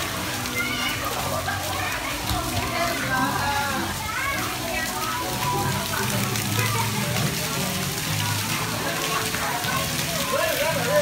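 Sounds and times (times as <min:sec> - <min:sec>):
children's voices: 0:00.0 - 0:10.3
crowd chatter: 0:00.0 - 0:11.0
fountain jets spraying onto wet floor: 0:00.0 - 0:11.0.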